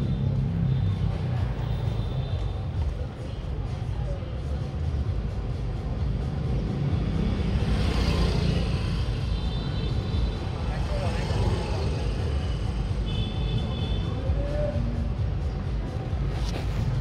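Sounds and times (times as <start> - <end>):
passing traffic rumble: 0.0 - 17.0.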